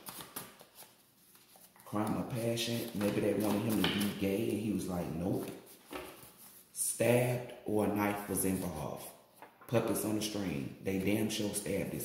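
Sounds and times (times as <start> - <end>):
cards clicking and rustling: 0.0 - 4.5.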